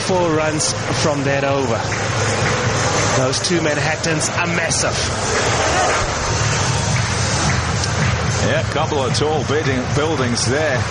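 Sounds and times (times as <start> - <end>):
stadium crowd din: 0.0 - 10.9.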